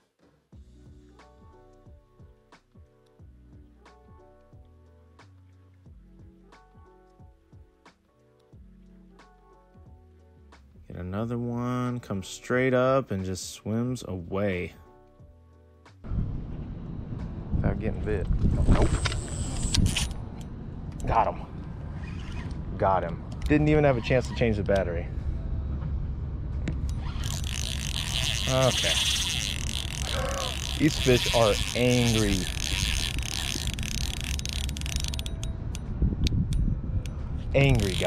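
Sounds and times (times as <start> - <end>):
wind rumble on microphone: 16.0 - 28.0, 29.6 - 38.0
fishing rod handling noise: 18.6 - 21.2, 26.9 - 35.8, 37.0 - 38.0
thin high whine: 18.6 - 22.5.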